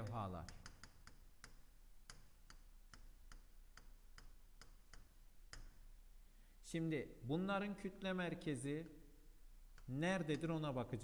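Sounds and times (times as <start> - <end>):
pen tapping on touchscreen: 0.0 - 5.8.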